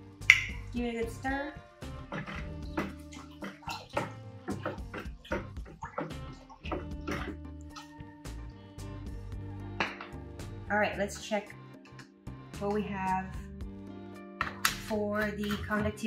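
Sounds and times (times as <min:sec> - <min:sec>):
background music: 0:00.0 - 0:16.0
water sloshing in plastic bucket: 0:01.8 - 0:07.9.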